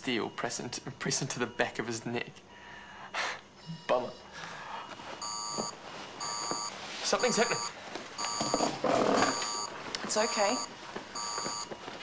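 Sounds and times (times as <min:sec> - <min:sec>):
patient monitor alarm beep: 0:00.0 - 0:11.8.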